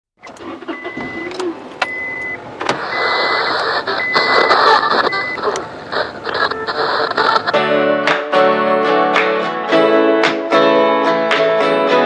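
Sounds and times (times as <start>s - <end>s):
car noise: 0.2s - 10.4s
short beeps: 0.7s - 5.6s.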